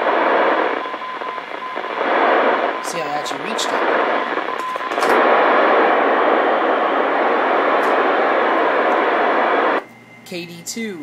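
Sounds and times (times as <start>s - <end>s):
radio static hiss: 0.0s - 9.8s.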